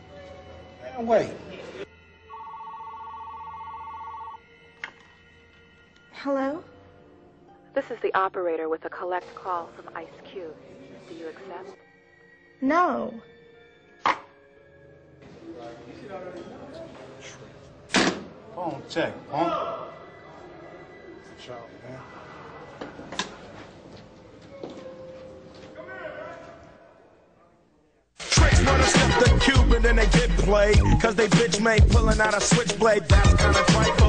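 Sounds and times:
telephone ringing: 0:02.3 - 0:04.4.

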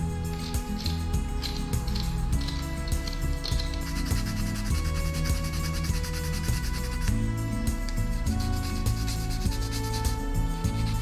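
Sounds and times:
background music with held notes: 0:00.0 - 0:11.0
sandpaper rasping on wood: 0:00.3 - 0:11.0.

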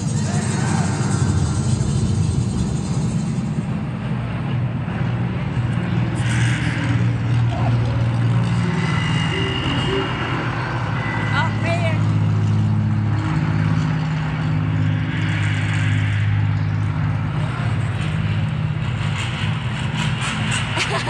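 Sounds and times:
propeller bomber engines droning: 0:00.0 - 0:21.0.

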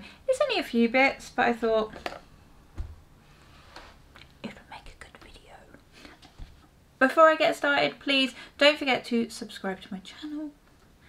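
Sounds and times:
woman whispering: 0:04.4 - 0:05.8.

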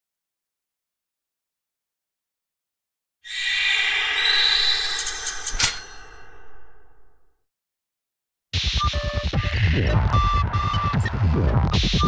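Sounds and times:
sharp metallic hits: 0:03.3 - 0:07.3
shimmering whoosh: 0:03.3 - 0:07.3.

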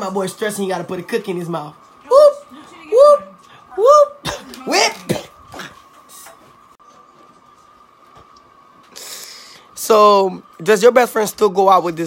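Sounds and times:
young man's vocal outbursts: 0:02.1 - 0:05.4.

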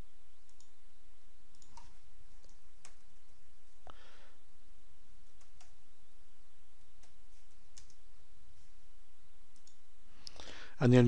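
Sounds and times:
steady low hum: 0:00.0 - 0:11.0
keyboard and mouse clicks: 0:01.5 - 0:03.0, 0:07.0 - 0:08.0.

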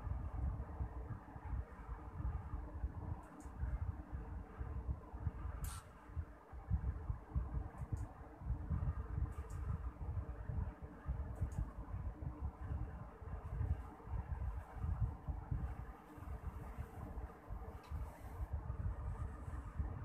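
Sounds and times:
low background rumble: 0:00.0 - 0:20.0.

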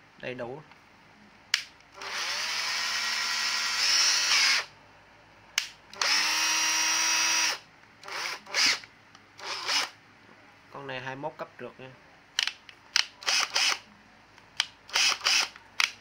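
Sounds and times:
cordless drill motor whining: 0:02.0 - 0:04.7, 0:06.0 - 0:08.8, 0:09.4 - 0:10.0, 0:13.2 - 0:13.8, 0:14.9 - 0:15.5.

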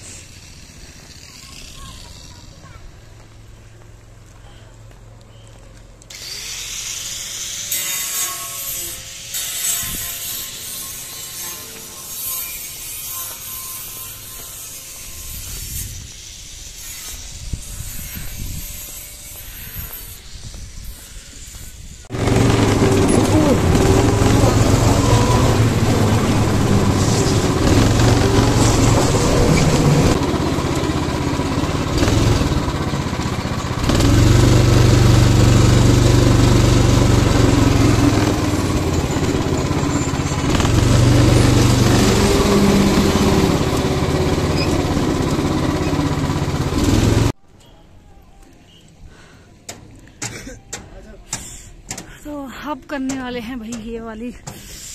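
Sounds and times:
open-air ambience: 0:00.0 - 0:54.9
go-kart engine revving: 0:22.1 - 0:47.4.

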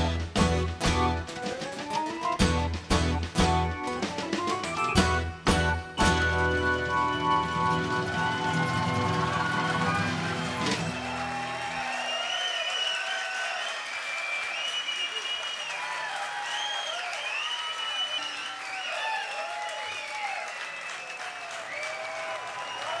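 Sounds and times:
audience applauding and cheering: 0:00.0 - 0:23.0
high shouts and whistles: 0:09.2 - 0:23.0.

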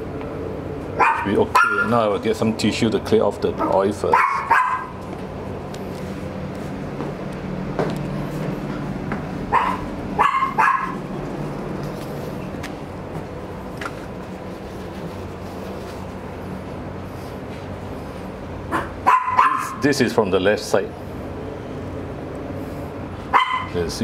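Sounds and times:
low background hum: 0:00.0 - 0:24.0
dog barking: 0:01.0 - 0:01.9, 0:03.6 - 0:05.0, 0:09.5 - 0:11.0, 0:18.7 - 0:19.8, 0:23.3 - 0:23.8.

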